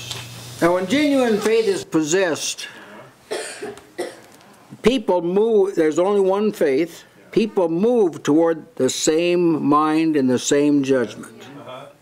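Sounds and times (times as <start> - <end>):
person speaking: 0.6 - 3.2, 4.7 - 12.0
person coughing: 3.3 - 4.3.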